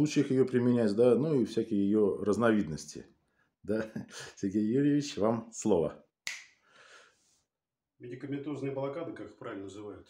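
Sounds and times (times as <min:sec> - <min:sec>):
breathy intake of breath: 0:06.6 - 0:07.4.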